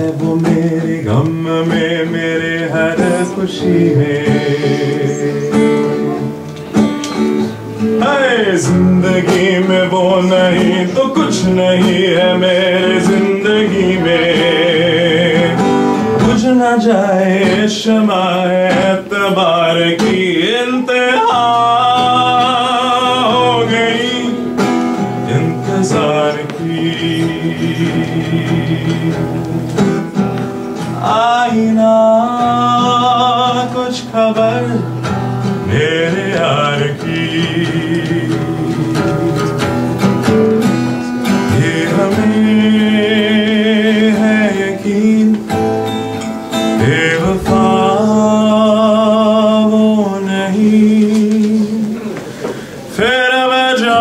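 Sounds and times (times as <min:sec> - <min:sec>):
acoustic guitar: 0:00.0 - 0:54.0
man singing: 0:00.0 - 0:54.0.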